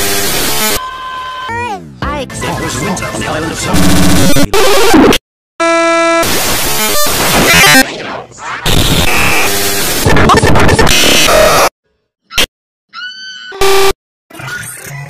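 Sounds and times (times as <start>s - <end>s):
distorted clipped music: 2.1s - 5.2s, 6.1s - 7.8s, 8.6s - 11.7s
noisy sound effects: 2.3s - 11.7s, 13.6s - 15.0s.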